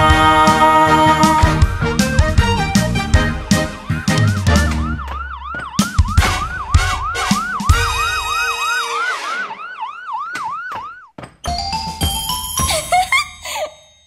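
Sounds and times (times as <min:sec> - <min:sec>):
upbeat music: 0:00.0 - 0:09.6, 0:11.5 - 0:13.6
ambulance siren: 0:03.0 - 0:11.2.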